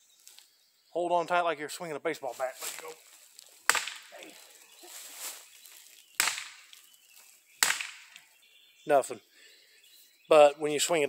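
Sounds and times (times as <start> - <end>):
stick striking tree trunk: 3.6 - 4.4, 6.2 - 6.8, 7.6 - 8.3.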